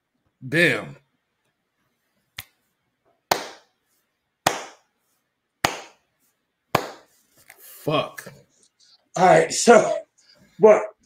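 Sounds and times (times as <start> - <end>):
slow hand clapping: 3.3 - 3.7, 4.5 - 4.8, 5.6 - 6.0, 6.8 - 7.1.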